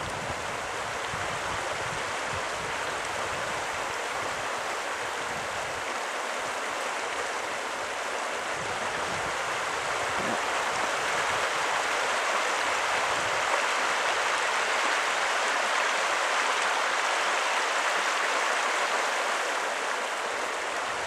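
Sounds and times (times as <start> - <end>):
river rushing over gravel: 0.0 - 21.0.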